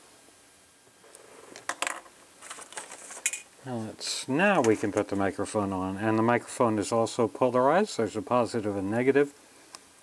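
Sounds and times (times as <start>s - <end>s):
paper rustling: 2.4s - 3.4s.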